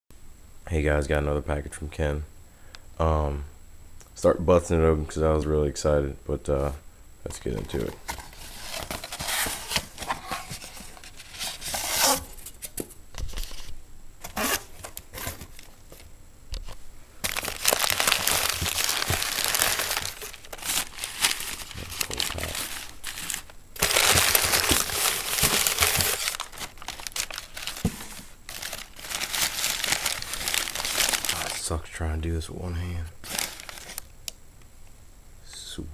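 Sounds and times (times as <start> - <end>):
newspaper crinkling and tearing: 7.4 - 16.1, 17.2 - 31.7, 33.2 - 34.1.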